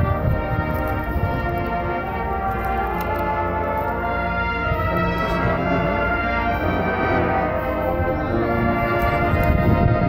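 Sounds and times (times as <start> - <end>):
marching band brass chords: 0.0 - 10.0.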